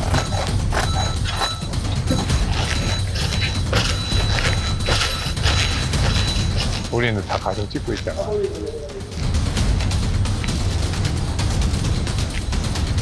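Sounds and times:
metal counting machines clacking: 0.0s - 13.0s.

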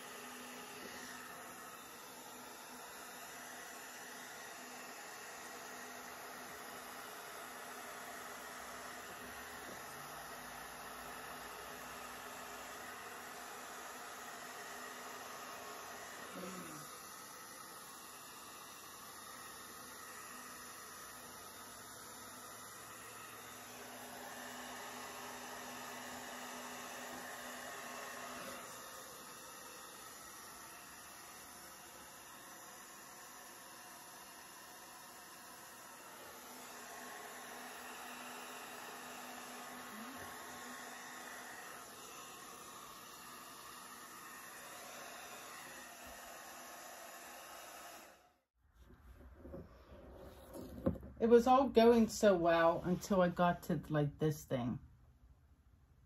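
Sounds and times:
hair dryer blowing air: 0.0s - 48.5s, 50.6s - 54.8s.

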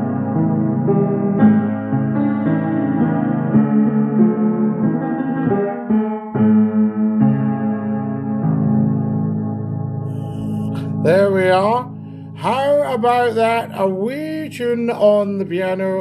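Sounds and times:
slow piano chords: 0.0s - 16.0s.

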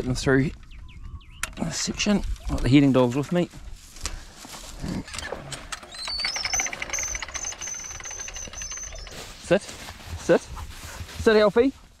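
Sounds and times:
fence reel knocks: 5.1s - 9.5s
reel clicking with high whine: 5.8s - 9.2s.

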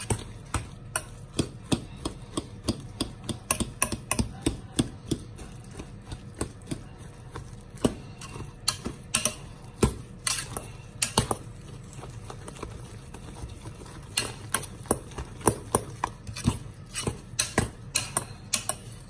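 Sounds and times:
potato masher mashing potatoes: 0.0s - 19.0s.

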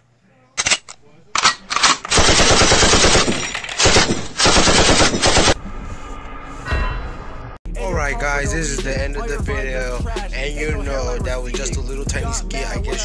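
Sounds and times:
machine-gun fire: 1.4s - 5.6s.

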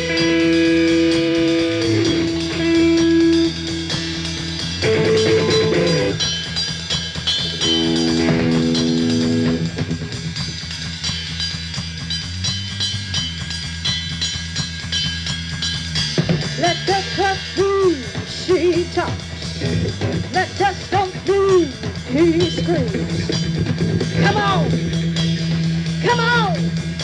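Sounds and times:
electric guitar notes: 0.0s - 6.6s, 7.2s - 10.4s, 16.2s - 27.0s
bass guitar: 0.0s - 27.0s
drums: 0.0s - 27.0s.

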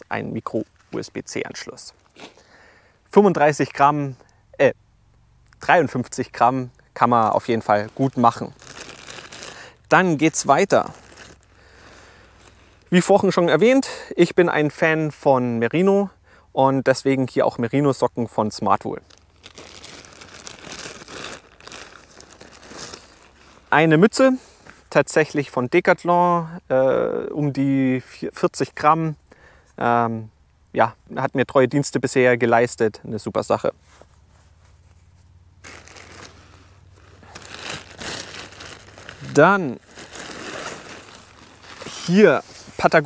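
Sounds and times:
plastic bag crinkling: 7.0s - 12.9s, 19.0s - 23.8s, 35.6s - 42.9s.

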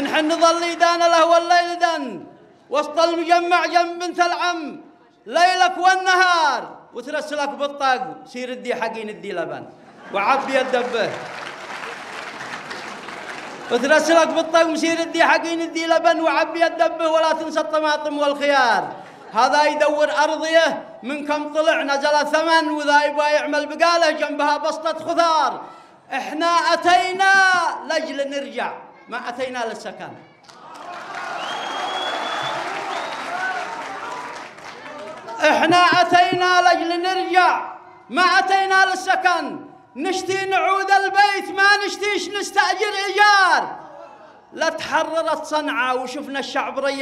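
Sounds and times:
man's voice: 0.0s - 11.2s, 13.7s - 30.2s, 35.3s - 43.8s, 44.4s - 47.0s
crowd clapping: 10.0s - 14.7s, 18.8s - 19.3s, 30.4s - 36.4s
audience applauding: 10.1s - 14.5s, 30.4s - 35.9s.

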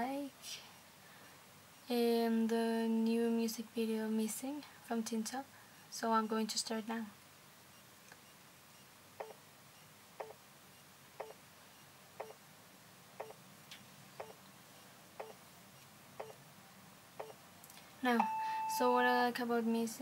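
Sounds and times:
clock ticking faintly: 10.2s - 10.4s, 16.2s - 16.4s.

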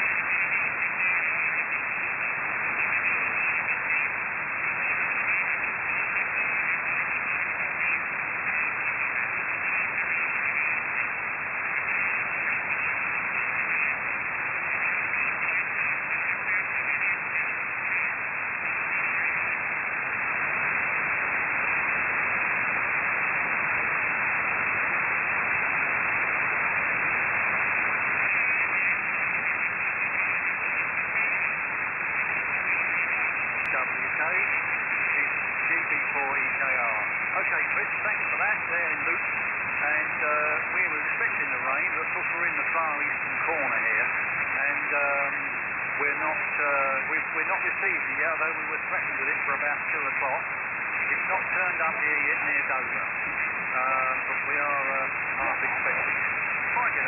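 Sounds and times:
radio static hiss: 0.0s - 57.0s.

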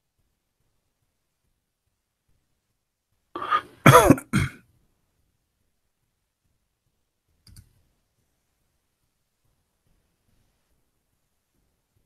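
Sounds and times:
man coughing: 3.4s - 4.6s.

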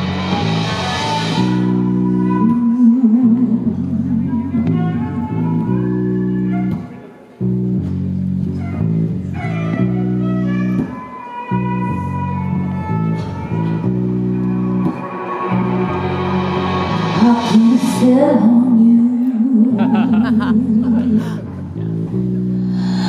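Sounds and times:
deep bass line: 0.0s - 6.8s, 7.4s - 10.9s, 11.5s - 18.9s, 19.7s - 23.0s
live band music: 0.0s - 19.4s
person singing: 16.8s - 21.6s.

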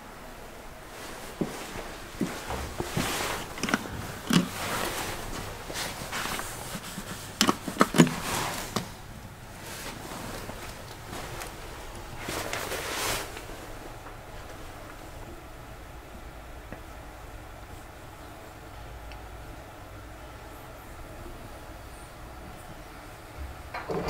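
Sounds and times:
rustling: 0.8s - 15.1s
footsteps: 0.9s - 14.6s.

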